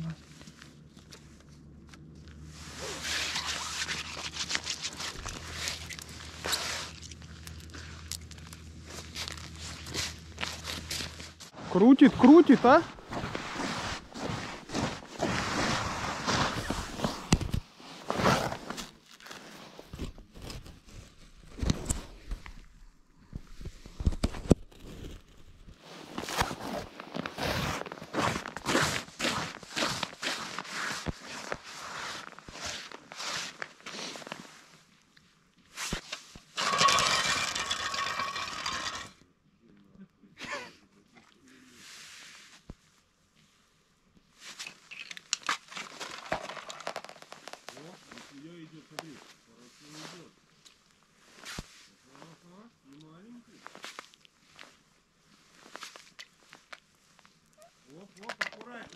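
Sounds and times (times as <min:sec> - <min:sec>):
boots crunching on icy snow: 0:08.7 - 0:17.2.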